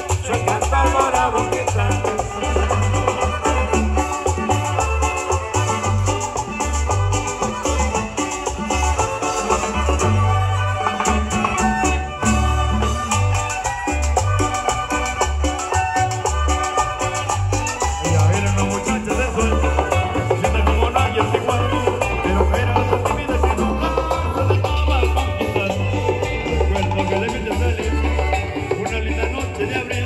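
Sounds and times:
bass: 0:00.0 - 0:30.0
drums: 0:00.0 - 0:30.0
electric guitar: 0:00.0 - 0:30.0
violin: 0:01.2 - 0:30.0.

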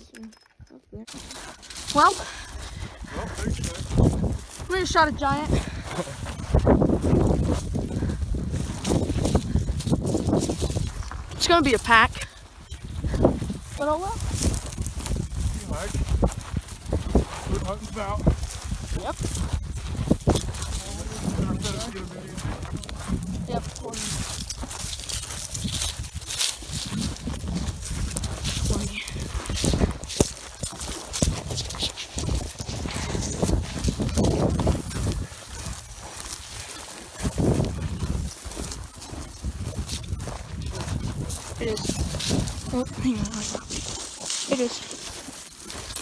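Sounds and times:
footsteps crunching dry grass: 0:01.1 - 0:46.0
low microphone rumble: 0:13.2 - 0:24.8
brush rustling against clothing: 0:13.5 - 0:46.0.

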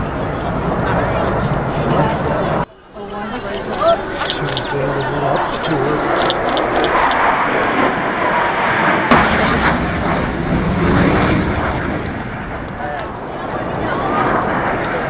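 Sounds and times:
jet engines flying past: 0:00.0 - 0:15.0.

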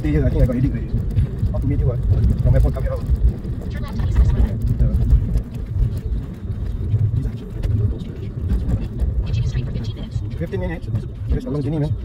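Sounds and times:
car tyres and engine rumble: 0:00.0 - 0:12.0.

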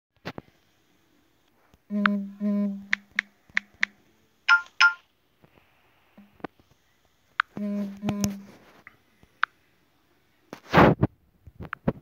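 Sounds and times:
smartphone notification chime: 0:04.5 - 0:05.0.

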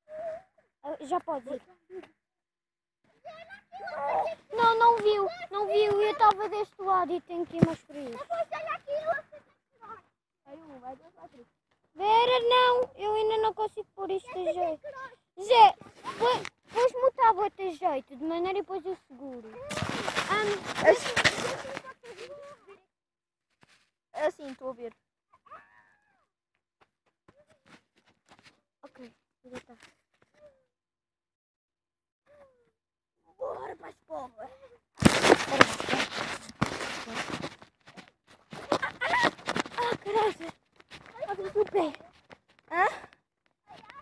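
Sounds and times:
children's voices: 0:03.1 - 0:22.9, 0:33.3 - 0:34.8, 0:39.8 - 0:43.1
rustling and knocking on microphone: 0:07.4 - 0:08.0, 0:19.6 - 0:21.9, 0:35.0 - 0:42.7.

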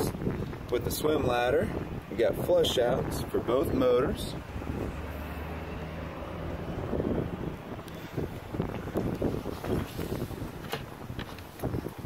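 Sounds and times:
wind buffeting microphone: 0:00.0 - 0:12.0
low steady rumble: 0:01.4 - 0:11.9.

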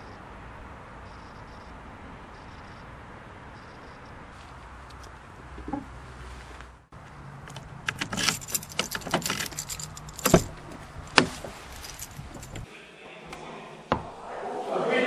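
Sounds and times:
keys jangling: 0:07.9 - 0:12.7.

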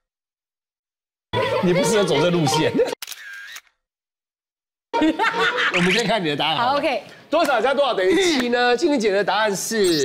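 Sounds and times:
camera shutter snap: 0:03.0 - 0:03.8.

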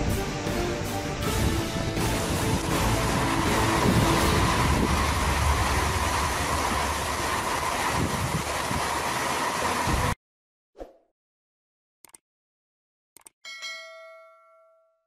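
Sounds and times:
wind: 0:01.1 - 0:10.2
heavy rain: 0:01.2 - 0:10.2.

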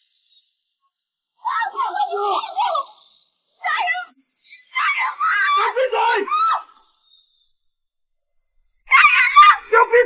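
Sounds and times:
woman screaming in terror: 0:04.7 - 0:06.7, 0:08.9 - 0:09.7.

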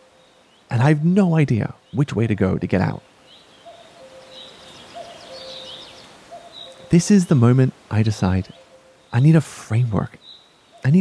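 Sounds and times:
birds chirping: 0:00.0 - 0:11.0
soft hiss: 0:00.0 - 0:11.0
low whistled bird notes: 0:03.3 - 0:09.4.

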